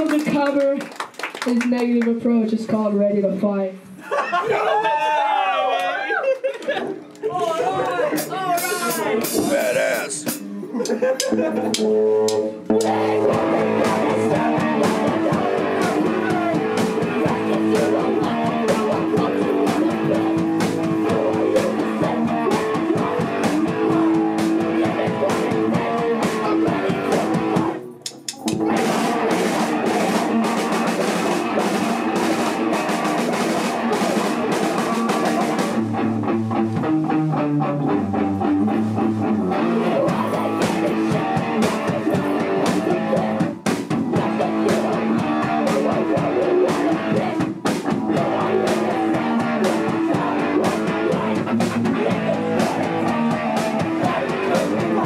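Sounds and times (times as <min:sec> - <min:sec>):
punk band playing live: 0:00.0 - 0:03.6, 0:06.7 - 0:55.0
screamed vocals: 0:04.5 - 0:06.3.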